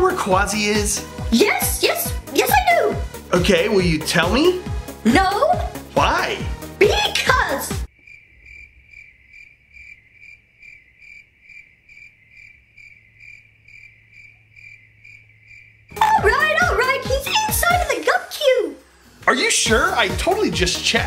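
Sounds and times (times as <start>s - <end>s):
crickets chirping: 7.9s - 16.0s.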